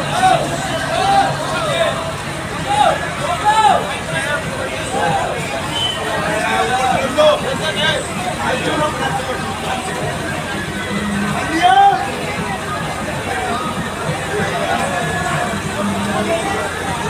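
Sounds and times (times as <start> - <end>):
crowd voices shouting: 0.0 - 17.0.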